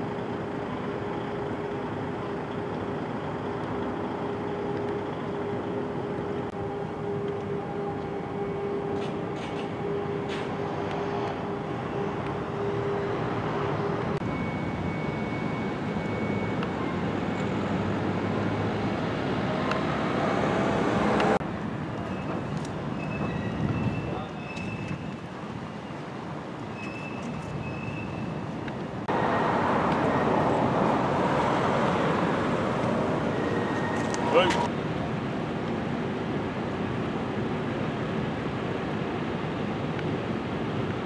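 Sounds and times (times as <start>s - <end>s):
road traffic passing: 0.0s - 41.0s.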